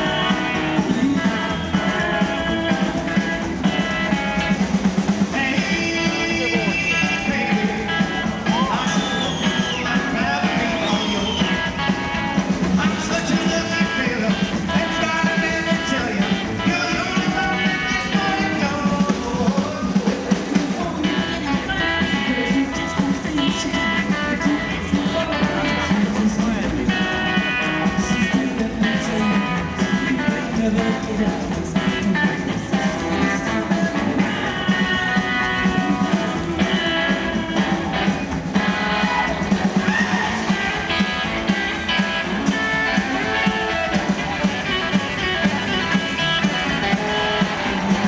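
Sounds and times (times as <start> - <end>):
guitar lines: 0.0 - 48.0
rockabilly band playing live: 0.0 - 48.0
steady drum beat: 0.0 - 48.0.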